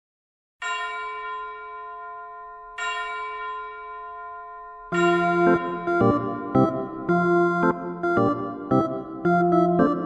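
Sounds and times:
bell ringing: 0.6 - 7.1.

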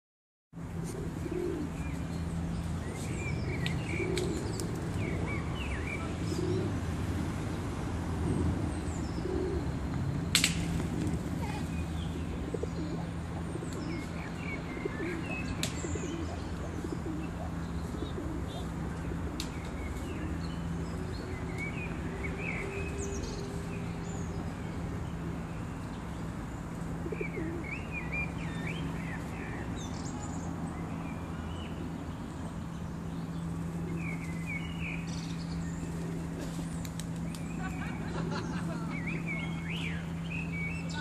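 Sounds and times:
pigeons cooing: 0.6 - 6.9, 8.2 - 9.8, 10.7 - 21.4, 26.9 - 27.8, 35.8 - 39.4
small birds chirping: 0.9 - 6.8, 8.2 - 41.0.

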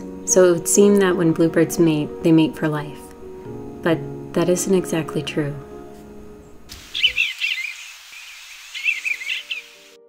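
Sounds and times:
soft background music: 0.0 - 7.6, 8.7 - 10.0
steady outdoor hiss: 6.0 - 10.0
bird singing: 6.8 - 10.0.

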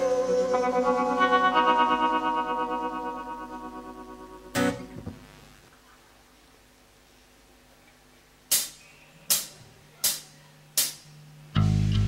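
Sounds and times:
electric guitar chord ringing: 0.0 - 5.3.

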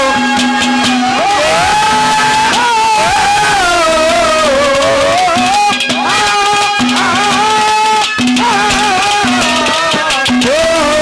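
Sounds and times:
man singing long high notes: 0.0 - 11.0.

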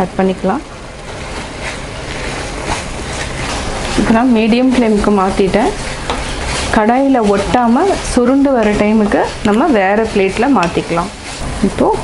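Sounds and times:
mixture sizzling in pan: 0.4 - 12.0
wooden spatula scraping pan: 1.0 - 12.0.

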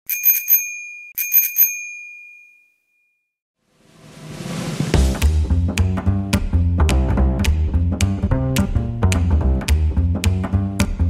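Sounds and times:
bicycle bell ringing: 0.1 - 3.3
music: 4.2 - 11.0.

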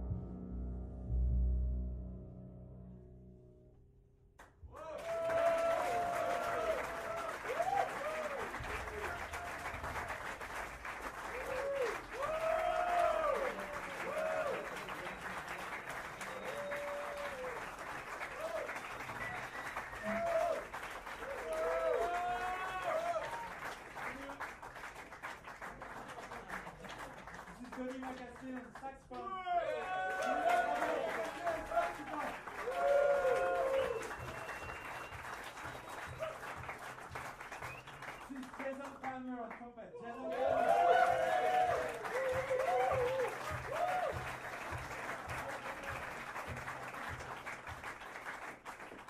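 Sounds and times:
whoops and cheers: 4.7 - 10.0, 11.2 - 14.9, 16.2 - 17.7, 18.3 - 23.7, 29.2 - 36.6, 39.9 - 44.5
audience applause: 4.7 - 49.0.

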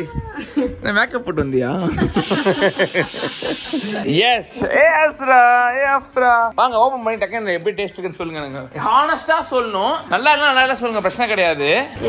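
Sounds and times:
woman laughing: 0.1 - 0.8, 1.8 - 4.0
steady hiss: 2.1 - 4.1.

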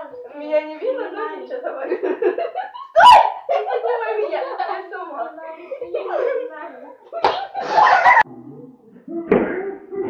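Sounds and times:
girl laughing: 5.6 - 8.2
body smacking: 7.2 - 7.8.

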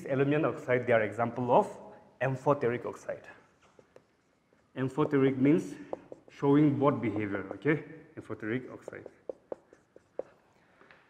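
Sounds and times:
marker writing on a whiteboard: 3.2 - 11.0.

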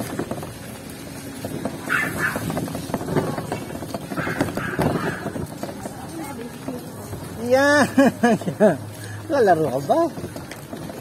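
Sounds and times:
pedicab rattling and clicking: 0.0 - 11.0.

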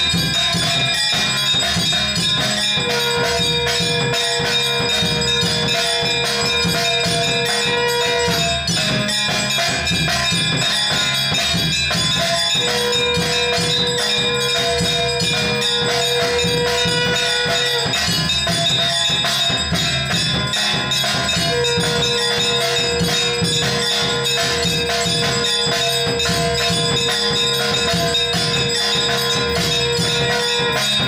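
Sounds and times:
bells ringing rapidly: 0.0 - 31.0
drums: 0.0 - 31.0
jingling percussion: 0.0 - 31.0
steady held tone: 0.0 - 31.0.

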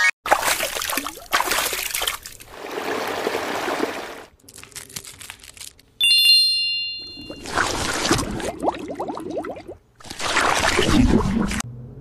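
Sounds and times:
bright chime: 6.0 - 7.5.

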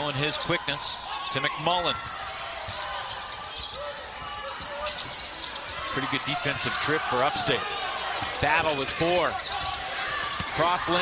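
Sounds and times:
arena background noise: 0.0 - 11.0.

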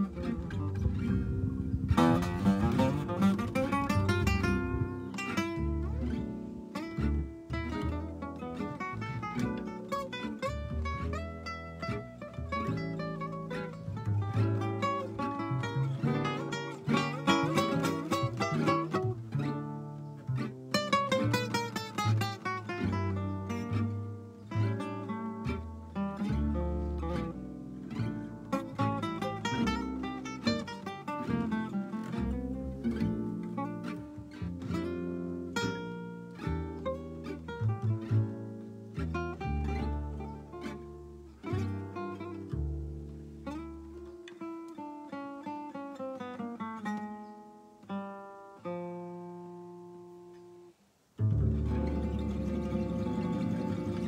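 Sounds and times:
upright double bass: 0.0 - 50.3, 51.2 - 54.0
acoustic guitars plucked and strummed: 0.0 - 54.0.

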